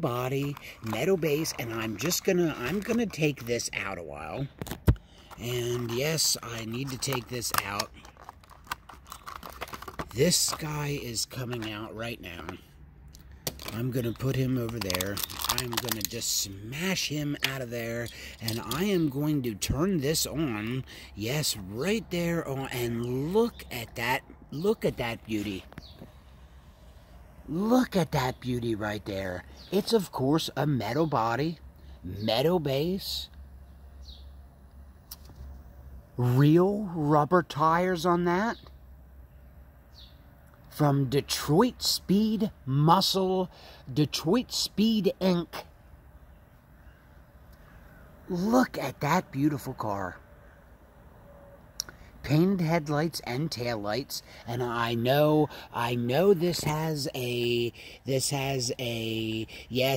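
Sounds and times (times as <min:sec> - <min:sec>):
plastic packaging clicking and crackling: 0:00.4 - 0:03.7, 0:04.5 - 0:11.9, 0:13.4 - 0:16.3.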